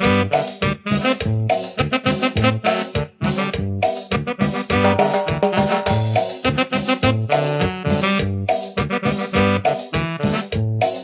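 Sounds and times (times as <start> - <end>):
upbeat keyboard instrumental: 0.0 - 11.0.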